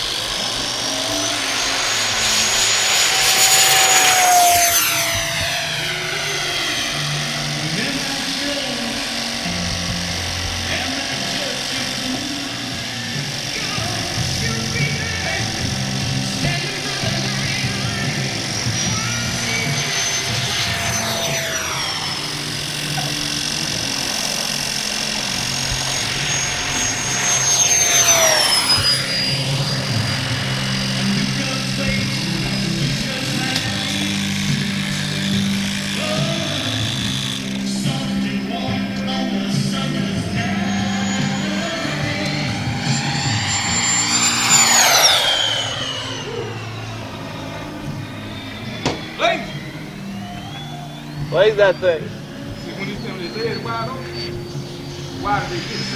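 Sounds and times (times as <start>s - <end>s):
electric fan jet whining past: 0.0s - 55.9s.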